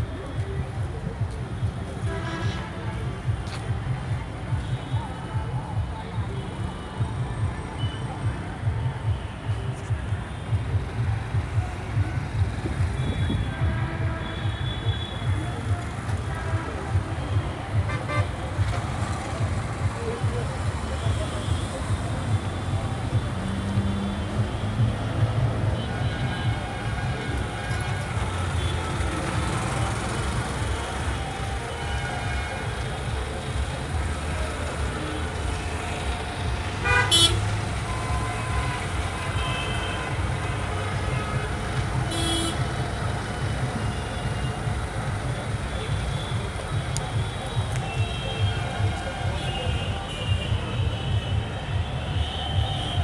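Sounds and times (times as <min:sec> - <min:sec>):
traffic engines rumbling: 0:00.0 - 0:53.0
vehicle horns tooting: 0:12.9 - 0:18.8, 0:35.2 - 0:42.9, 0:45.5 - 0:53.0.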